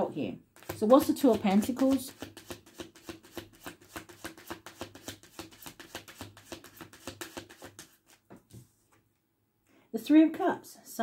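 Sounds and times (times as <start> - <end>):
cards shuffled by hand: 0.6 - 8.6.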